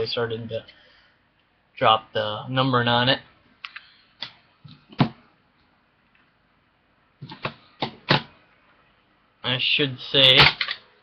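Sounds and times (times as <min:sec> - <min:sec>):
plastic card holder knocks and clicks: 0:07.2 - 0:08.3.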